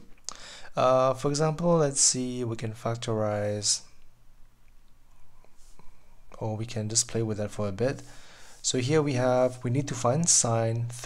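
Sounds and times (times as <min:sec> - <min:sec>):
soft breath: 0:00.3 - 0:00.8, 0:05.1 - 0:06.3, 0:08.0 - 0:08.7.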